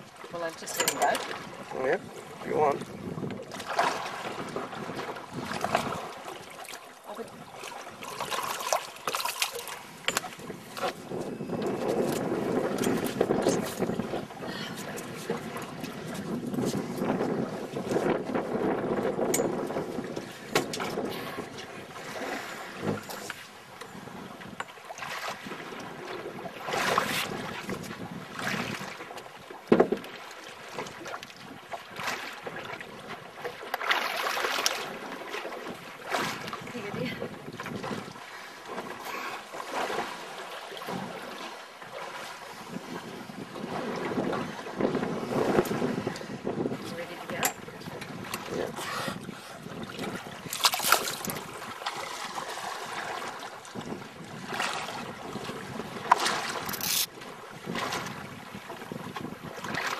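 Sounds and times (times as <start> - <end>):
wind buffeting microphone: 0.0 - 6.3, 9.8 - 29.0, 35.0 - 38.9, 42.4 - 59.9
water lapping against boat hull: 0.0 - 59.9.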